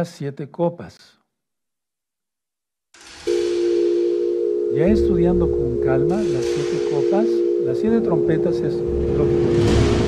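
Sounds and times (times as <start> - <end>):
steady low electronic tone: 3.0 - 10.0.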